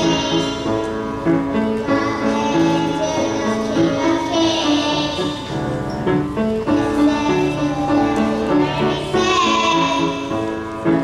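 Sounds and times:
children singing: 0.0s - 0.7s, 1.6s - 5.5s, 6.7s - 10.4s
instrumental accompaniment: 0.0s - 11.0s.

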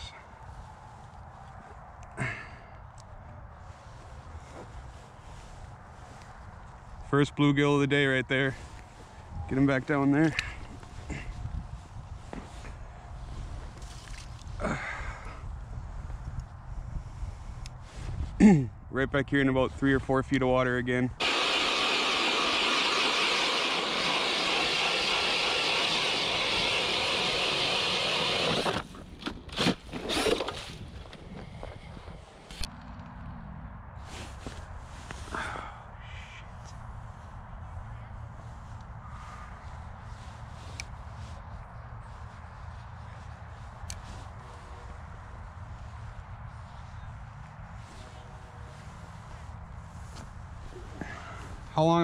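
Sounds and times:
drill grinding through ice: 21.2s - 30.8s.

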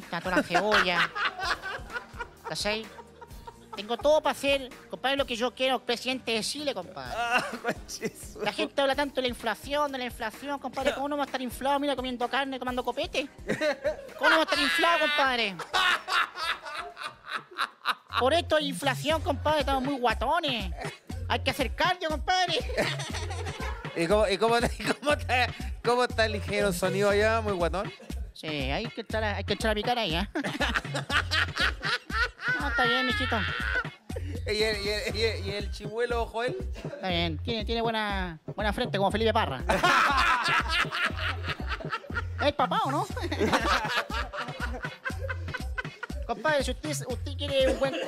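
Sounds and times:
background music: 0.0s - 48.0s
man laughing: 0.2s - 4.2s, 7.1s - 8.7s, 13.4s - 18.4s, 22.5s - 25.6s, 30.4s - 35.2s, 39.7s - 48.0s.

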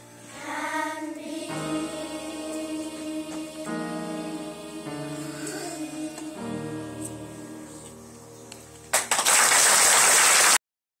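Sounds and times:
audience applause: 8.9s - 10.6s.

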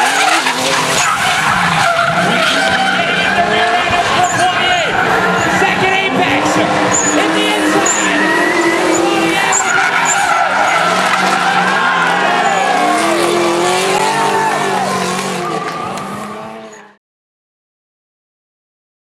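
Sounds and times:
tyres squealing: 0.0s - 16.8s
car engines revving: 0.0s - 17.0s.

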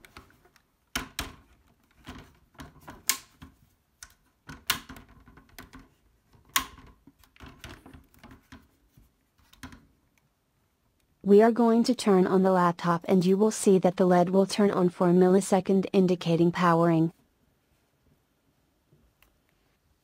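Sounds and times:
plastic clicks and knocks: 0.0s - 8.8s, 9.4s - 10.0s.

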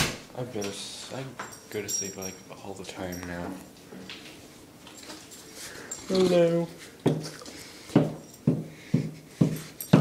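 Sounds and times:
dog breathing with low hum: 5.3s - 10.0s.

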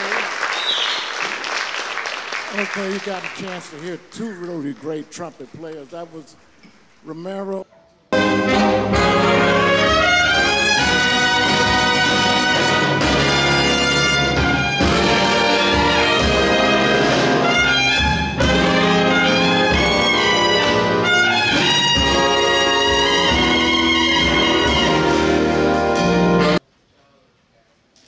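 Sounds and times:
brass section: 8.1s - 26.6s
jazz big band playing: 8.1s - 26.6s.

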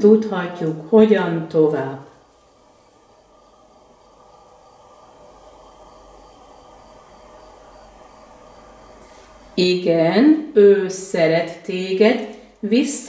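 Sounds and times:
faint steady hum: 0.0s - 13.0s
low hiss: 0.0s - 13.0s.

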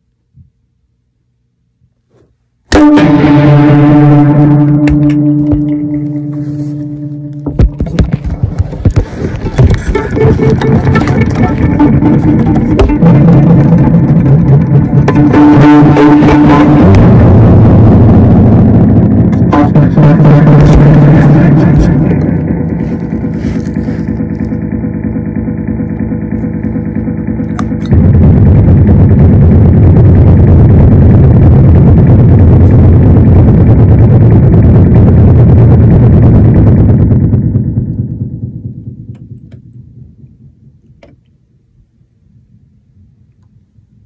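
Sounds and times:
amplified violin drone: 2.7s - 29.0s.

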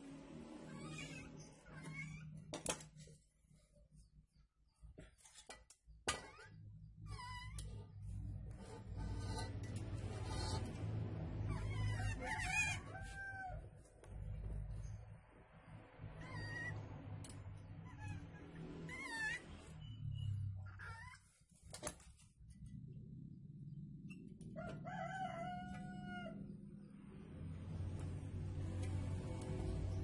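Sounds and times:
animal wavering calls: 8.4s - 13.7s.

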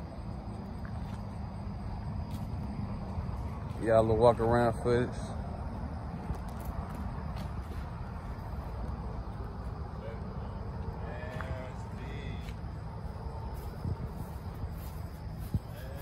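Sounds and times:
faint distant voices: 9.6s - 16.0s.

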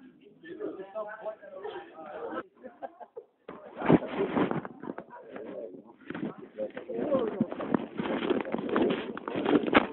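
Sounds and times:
low voices murmuring: 0.0s - 9.9s.

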